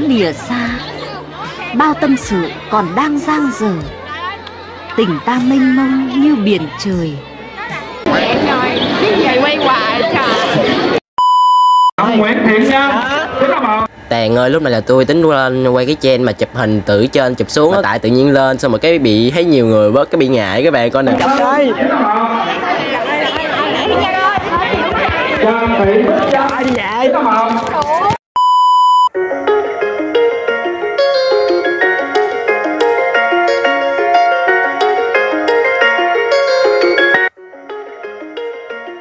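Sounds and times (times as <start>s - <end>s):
girls talking and laughing: 0.4s - 11.0s, 22.4s - 25.4s
high electronic beep: 11.2s - 11.9s, 28.4s - 29.2s
plucked keyboard background music: 29.2s - 39.0s.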